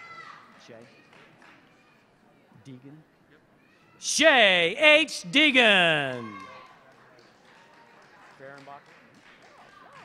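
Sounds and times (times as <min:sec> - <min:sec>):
faint human voice: 0:04.0 - 0:06.4.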